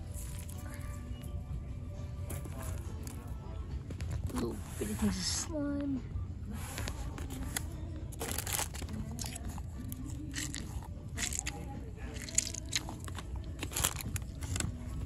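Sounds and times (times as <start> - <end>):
plastic packaging crinkling: 7.2 - 14.8.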